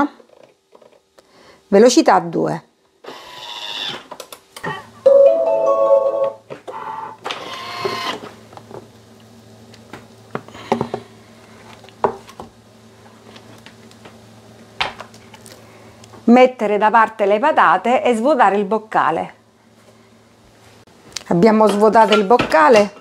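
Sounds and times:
steady low hum: 0:06.4 - 0:21.4.

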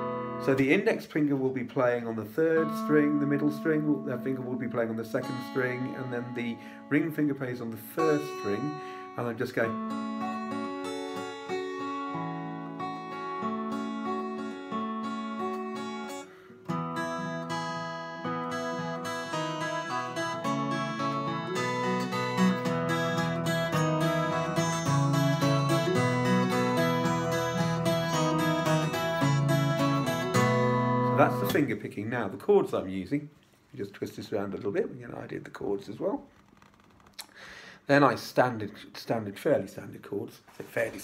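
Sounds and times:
fingerpicked acoustic guitar: 0:00.0 - 0:01.0, 0:02.4 - 0:31.8.

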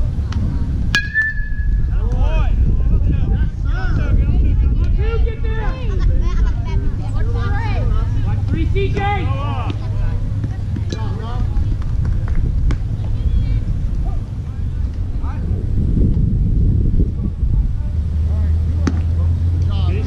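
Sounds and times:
distant voices: 0:00.0 - 0:20.0
wind rumbling on microphone: 0:00.0 - 0:20.0.

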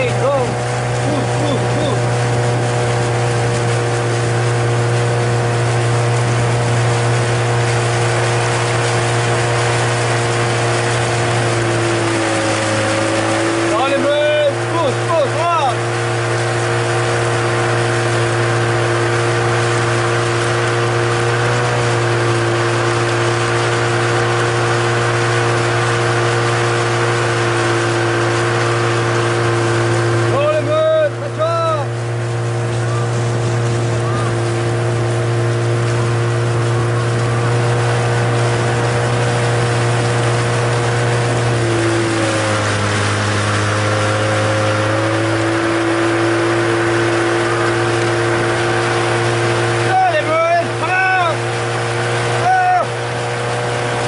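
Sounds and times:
outboard engine running: 0:00.0 - 0:54.0
person calling out: 0:00.1 - 0:02.1, 0:49.8 - 0:51.4, 0:52.4 - 0:53.0.

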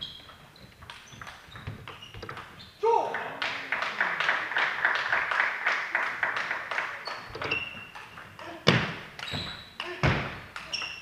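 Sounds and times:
spectators clapping: 0:02.9 - 0:07.4.

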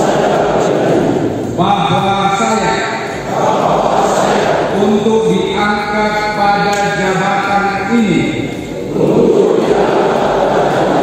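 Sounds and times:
men reciting in unison: 0:00.0 - 0:11.0.

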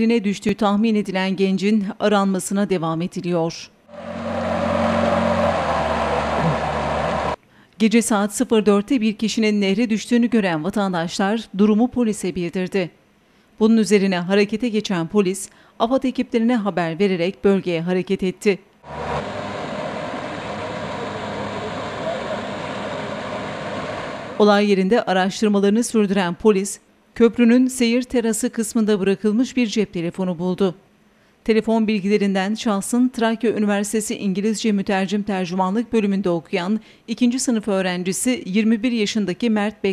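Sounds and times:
outboard motor running: 0:03.9 - 0:07.4, 0:18.9 - 0:24.4.

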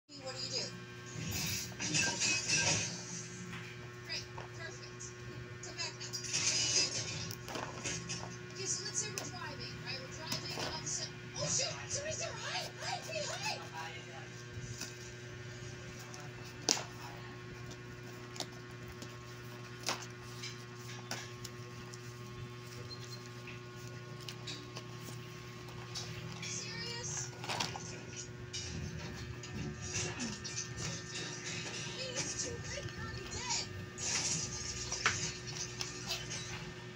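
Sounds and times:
cardboard and packaging rustling: 0:16.0 - 0:28.2.

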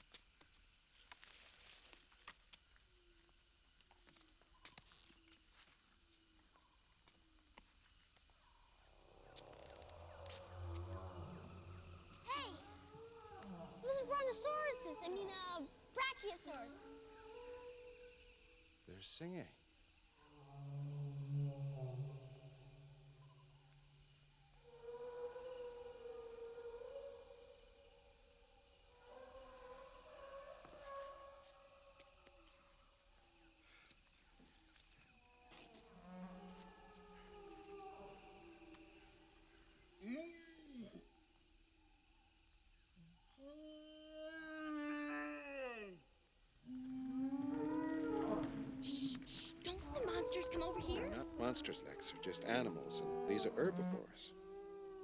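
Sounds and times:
long drawn-out animal calls: 0:08.5 - 0:19.0, 0:20.1 - 0:32.8, 0:33.6 - 0:41.3, 0:43.0 - 0:55.0.

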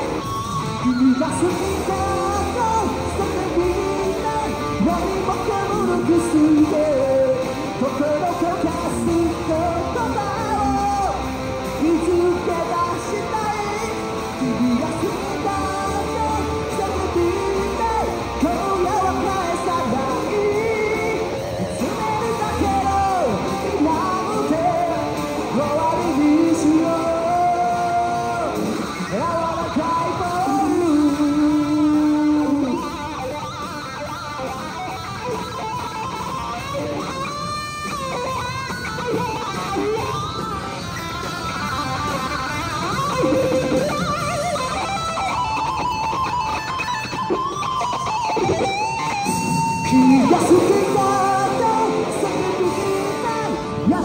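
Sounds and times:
electric guitar playing: 0:00.0 - 0:54.0.

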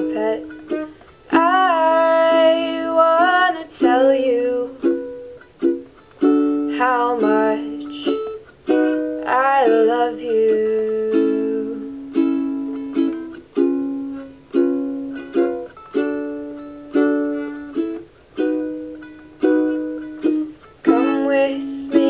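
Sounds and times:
ukulele strumming chords: 0:00.0 - 0:22.0.

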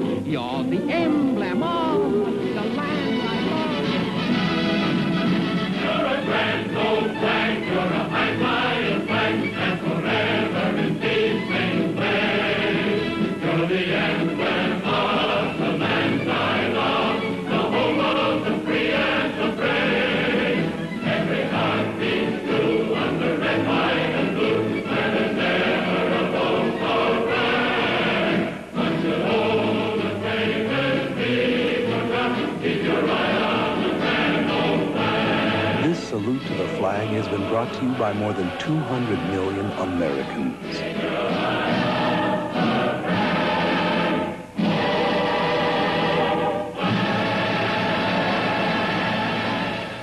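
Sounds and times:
instrumental accompaniment: 0:00.0 - 0:47.9
choir singing: 0:00.9 - 0:50.0.

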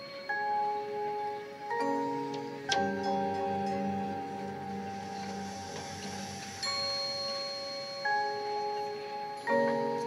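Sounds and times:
ringing mallet percussion and bells: 0:00.0 - 0:10.0.

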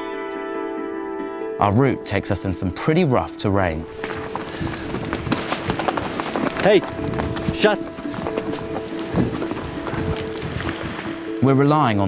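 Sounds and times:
background music: 0:00.0 - 0:12.0
horse hooves on stones: 0:03.9 - 0:11.4.

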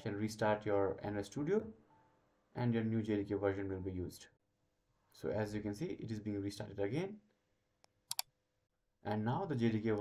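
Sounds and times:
computer mouse clicks: 0:07.8 - 0:08.3.

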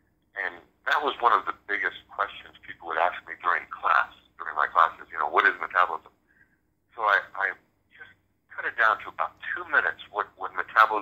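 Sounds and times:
person talking: 0:00.4 - 0:06.1, 0:07.0 - 0:11.0.

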